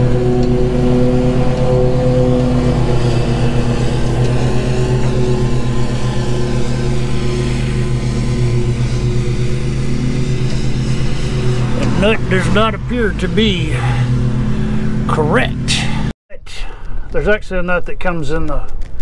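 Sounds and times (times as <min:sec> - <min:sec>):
engine running steadily: 0:00.0 - 0:16.1.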